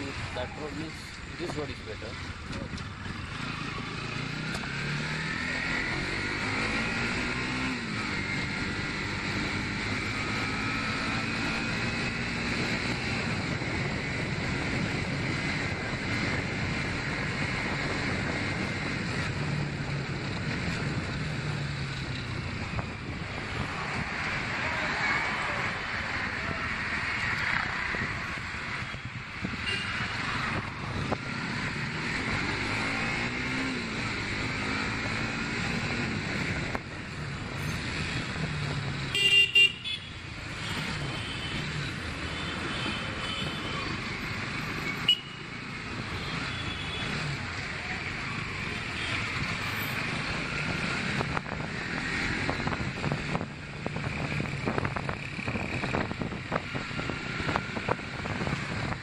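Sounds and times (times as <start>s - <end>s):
wind and road noise: 0.0s - 59.0s
motorcycle engine revving: 2.0s - 40.0s, 40.6s - 59.0s.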